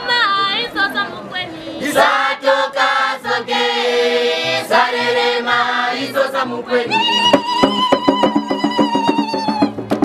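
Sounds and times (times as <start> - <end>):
group singing together: 1.8 - 7.8
sharp percussive beats: 6.9 - 10.0.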